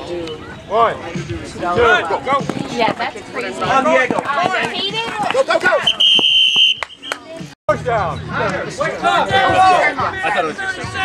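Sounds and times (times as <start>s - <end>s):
whistle blown: 5.8s - 7.3s
people shouting: 8.9s - 11.0s.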